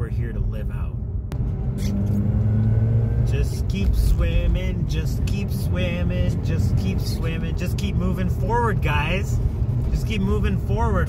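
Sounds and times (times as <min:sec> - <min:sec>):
car engine droning: 0:00.0 - 0:11.0
road rumble: 0:00.0 - 0:11.0.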